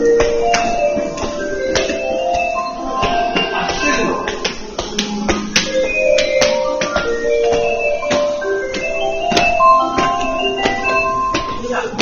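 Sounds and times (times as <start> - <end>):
bell-like station melody: 0.0 - 12.0.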